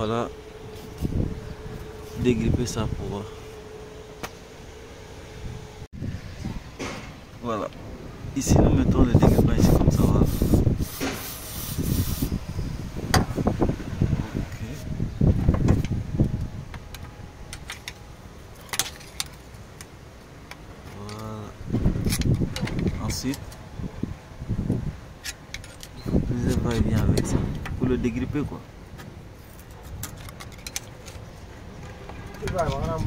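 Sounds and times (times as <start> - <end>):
aerosol spray hiss: 9.7 - 12.4
metallic clicks and knocks: 29.9 - 31.2.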